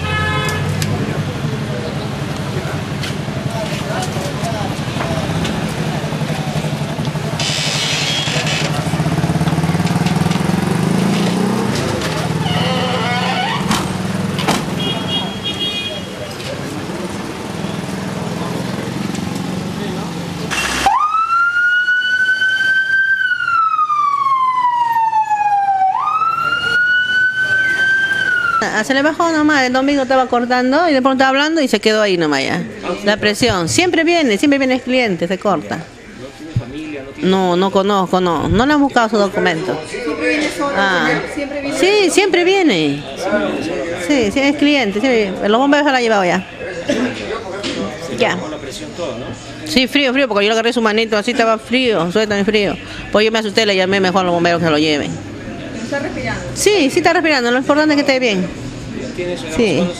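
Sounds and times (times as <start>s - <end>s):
vehicle horn honk: 0.0s - 0.8s, 7.4s - 8.6s, 12.4s - 13.7s, 14.7s - 16.2s
street traffic rumble: 0.0s - 59.9s
vehicle engine running: 0.6s - 15.6s, 16.3s - 20.9s
ambulance siren wailing: 12.2s - 13.7s, 20.5s - 28.9s.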